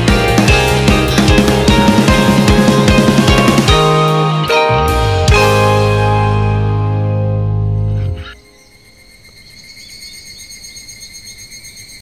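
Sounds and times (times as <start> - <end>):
guitar chord: 0.0 - 8.4
chirping insects: 7.8 - 12.0.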